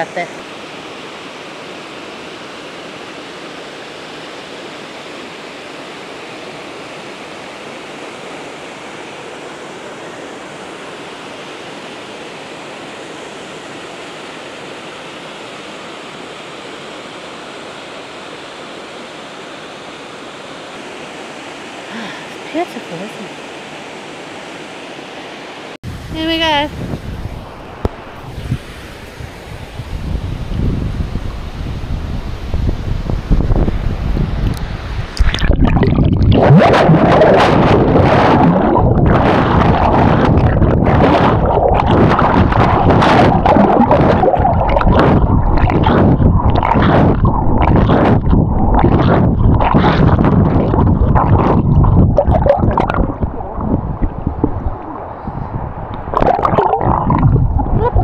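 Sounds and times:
water sloshing and lapping: 0:34.5 - 0:58.0
waterfall rushing: 0:35.3 - 0:55.3.

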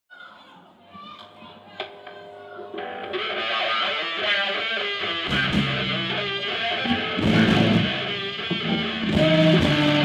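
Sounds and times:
crowd voices: 0:00.1 - 0:05.1
electric guitar held notes: 0:01.8 - 0:10.0.

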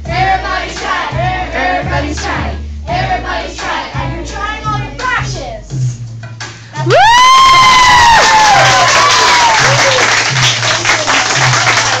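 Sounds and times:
song backing beat: 0:00.0 - 0:12.0
children cheering and screaming: 0:06.9 - 0:10.1
clapping: 0:07.9 - 0:12.0.

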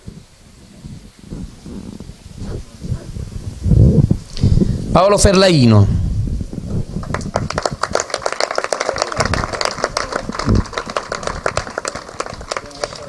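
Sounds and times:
crowd applauding: 0:06.9 - 0:13.0.

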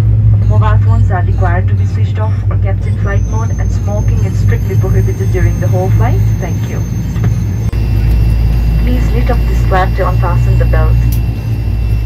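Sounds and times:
turboprop engines humming: 0:00.0 - 0:12.0.

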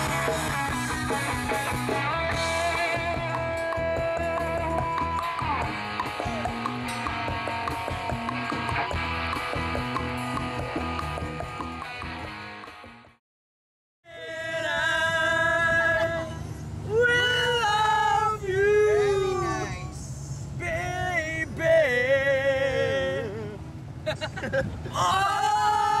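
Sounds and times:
rock band playing: 0:00.0 - 0:13.2
slide electric guitar: 0:00.0 - 0:13.2.

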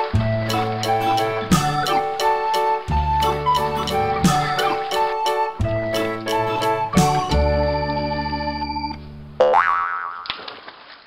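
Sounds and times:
organ-like background music: 0:00.0 - 0:09.4
cartoon boing sound effect: 0:09.4 - 0:10.3.

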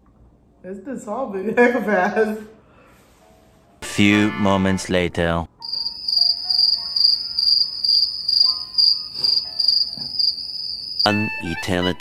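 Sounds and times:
cricket chirping: 0:05.6 - 0:11.1.

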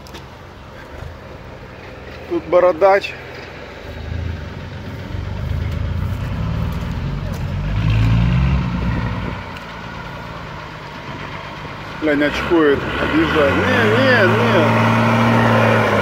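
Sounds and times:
diesel truck engine: 0:00.0 - 0:16.0.

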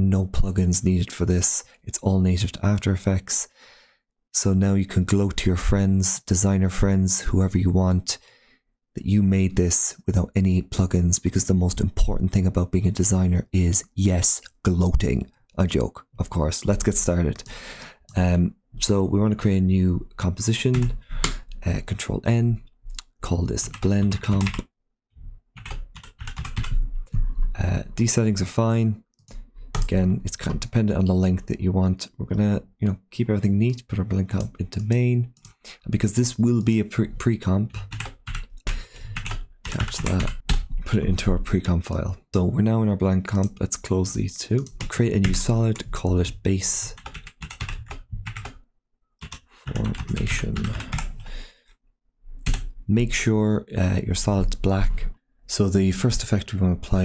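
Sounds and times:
keyboard typing: 0:20.7 - 0:22.0, 0:23.6 - 0:24.6, 0:25.6 - 0:27.6, 0:29.7 - 0:30.0, 0:37.7 - 0:40.9, 0:47.0 - 0:48.6, 0:49.2 - 0:51.3.

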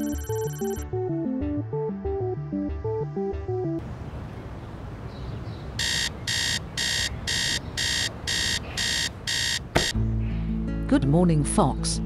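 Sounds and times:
phone alarm beeping: 0:00.0 - 0:00.8, 0:05.8 - 0:10.0.

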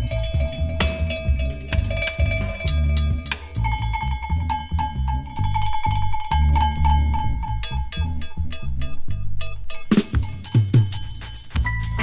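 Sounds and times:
heavy bass beat: 0:00.0 - 0:12.0.

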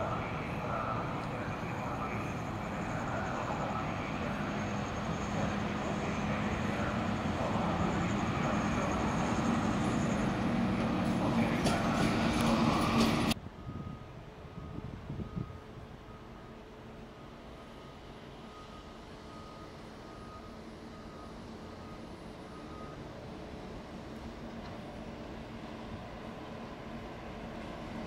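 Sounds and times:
electric locomotive approaching: 0:00.0 - 0:28.0.

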